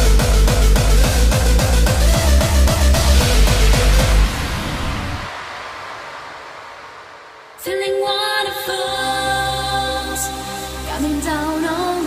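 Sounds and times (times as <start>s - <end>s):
electronic noise sweep: 0.0s - 9.2s.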